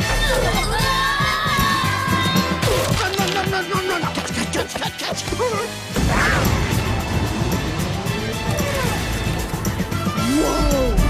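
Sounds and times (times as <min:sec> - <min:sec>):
orchestral film score: 0:00.0 - 0:11.0
explosion blast: 0:06.0 - 0:08.2.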